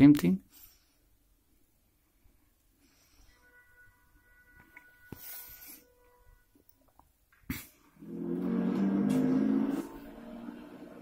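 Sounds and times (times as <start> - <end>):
faint steady tones: 0.6 - 7.1
loud multi-tone sound: 3.0 - 6.6, 8.0 - 11.0.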